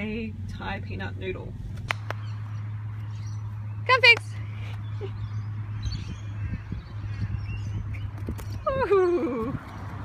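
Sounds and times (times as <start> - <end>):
faint bird calls: 2.1 - 9.4.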